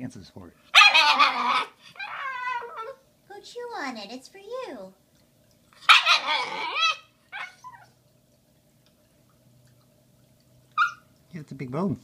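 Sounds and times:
puppy whining: 0.8s - 3.0s, 5.8s - 8.0s, 10.7s - 11.1s
puppy yip: 5.9s - 7.9s, 10.8s - 11.1s.

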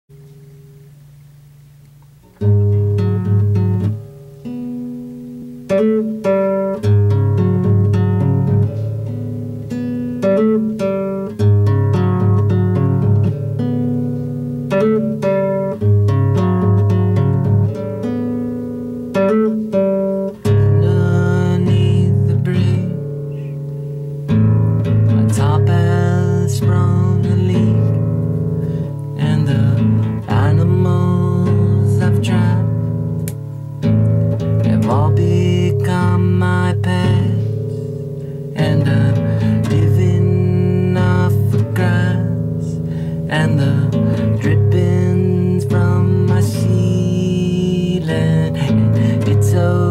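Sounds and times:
acoustic guitar: 0.1s - 49.9s
man singing: 20.4s - 23.1s, 25.1s - 28.1s, 28.9s - 32.9s, 34.5s - 37.8s, 38.5s - 49.9s.

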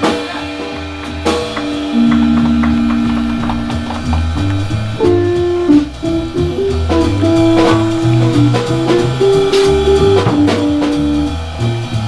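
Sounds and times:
small jazz band playing: 0.0s - 12.0s
light drum ticks: 1.5s - 10.6s.

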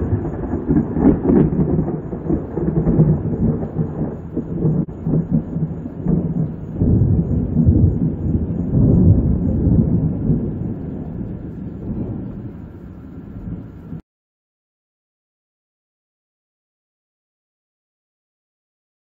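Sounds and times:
rolling thunder: 0.0s - 14.0s.

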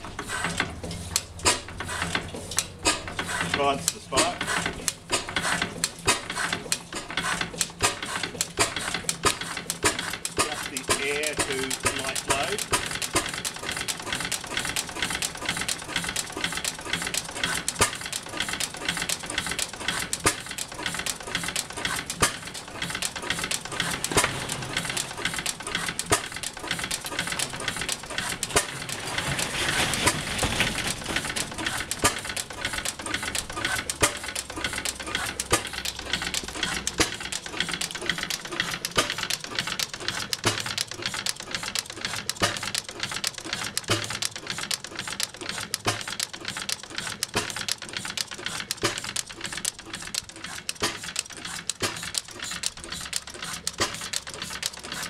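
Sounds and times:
stationary petrol engine clattering: 0.0s - 55.0s.

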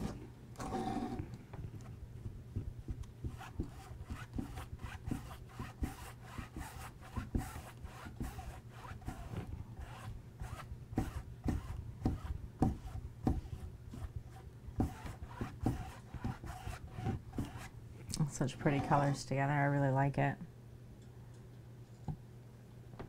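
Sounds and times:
foam brush rubbing on canvas: 3.2s - 17.7s.

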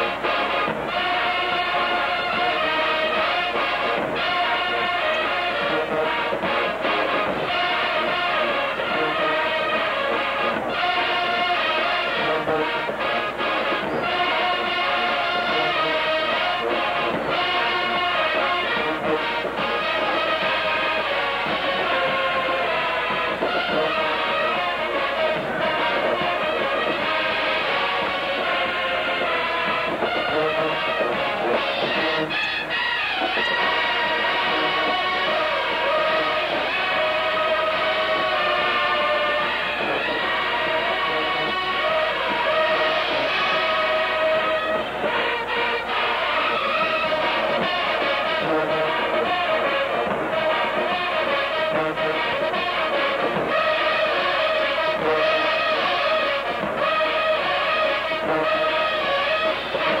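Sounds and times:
marching band brass chords: 0.0s - 60.0s.

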